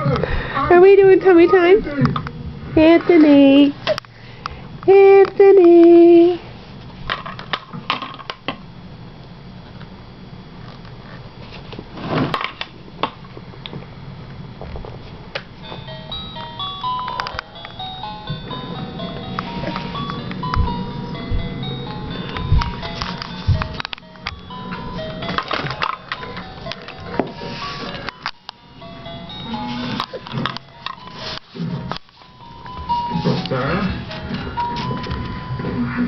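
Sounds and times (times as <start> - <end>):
electronic chime tune: 15.7 - 36.0.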